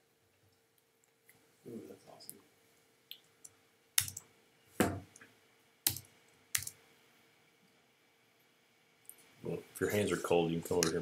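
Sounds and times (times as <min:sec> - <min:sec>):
keystrokes on computer keyboard: 0:04.0 - 0:04.3, 0:05.9 - 0:06.8.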